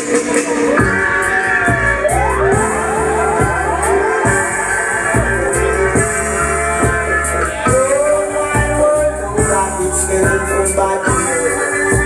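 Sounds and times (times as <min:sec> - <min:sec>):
reggae dub music: 0:00.0 - 0:12.0.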